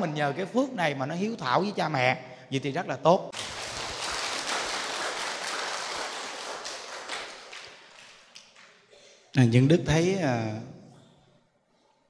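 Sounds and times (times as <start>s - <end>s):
children clapping: 3.3s - 8.9s.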